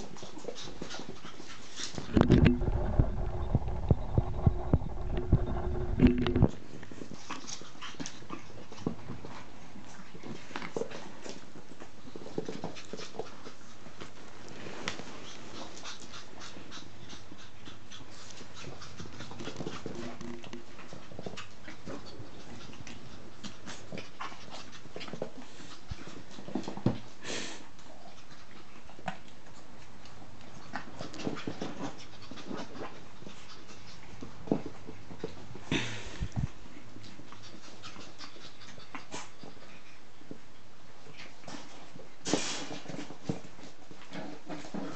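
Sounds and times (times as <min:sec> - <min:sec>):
puppy noises: 0:00.0 - 0:44.9.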